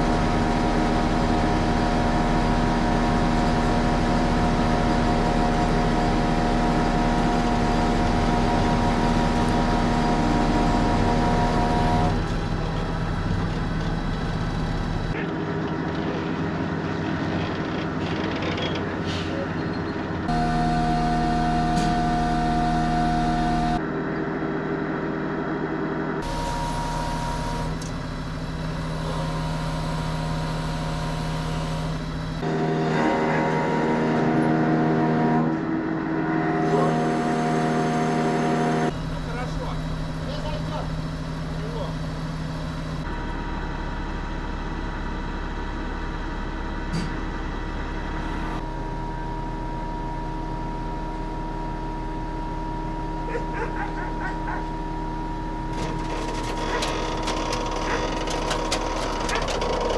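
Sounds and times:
crane engine running: 0.0s - 59.9s.

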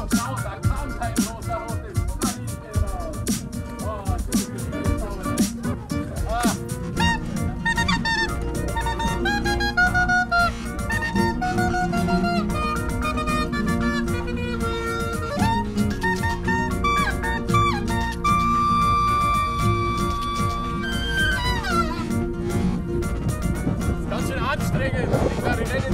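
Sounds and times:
electronic backing track: 0.0s - 25.9s
clarinet melody: 4.7s - 24.1s.

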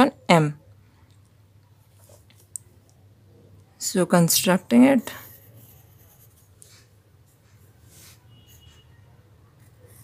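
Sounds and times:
pencil scratching on paper: 4.7s - 8.8s, 9.6s - 10.0s.

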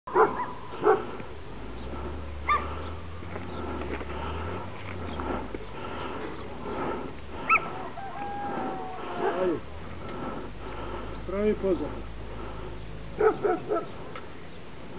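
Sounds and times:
dog barking: 0.1s - 1.1s, 2.4s - 2.7s, 7.5s - 9.5s, 13.2s - 14.0s
low rumble: 0.5s - 13.2s.

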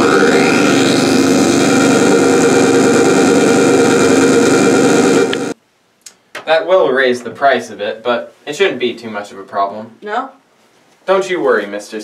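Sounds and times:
harsh electronic synthesizer drone: 0.0s - 5.6s.

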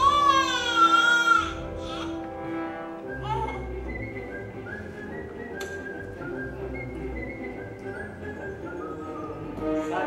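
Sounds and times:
soft music over loudspeakers: 0.0s - 10.0s
whistled melody: 2.0s - 10.0s.

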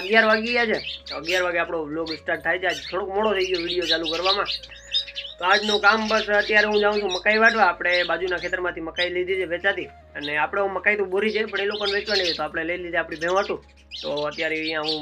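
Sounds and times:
man talking: 0.0s - 4.6s, 5.3s - 15.0s
birds chirping: 0.0s - 15.0s.

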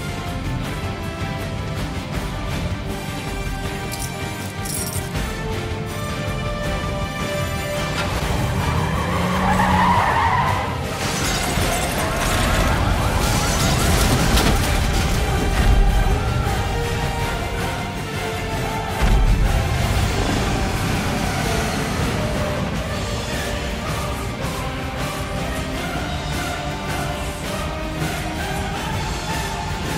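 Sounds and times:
background music: 0.0s - 29.9s
car tyres screeching: 7.5s - 16.8s.

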